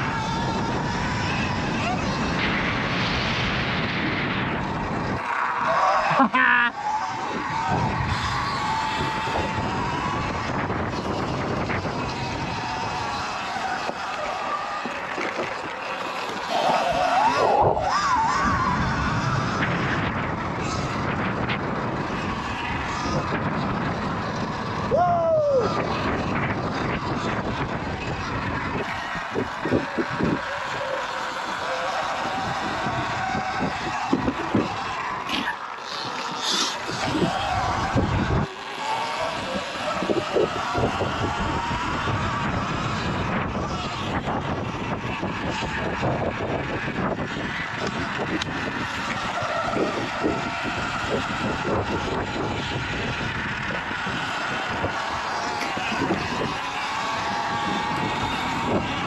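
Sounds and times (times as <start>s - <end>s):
electric motor whine: 0.0s - 59.0s
tyre and chassis noise: 0.0s - 59.0s
wind on microphone: 0.0s - 59.0s.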